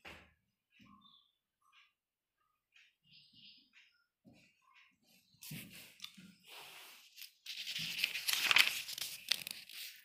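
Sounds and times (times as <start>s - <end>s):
paper page turning: 6.8s - 10.0s.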